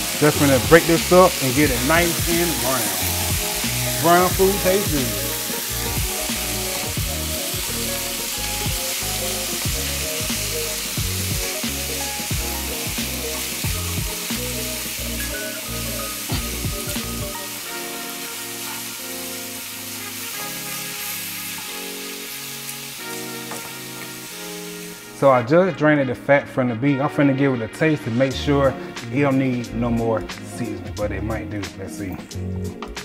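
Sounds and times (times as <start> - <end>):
meat sizzling in a skillet: 0.0 - 25.3
background music: 0.0 - 33.0.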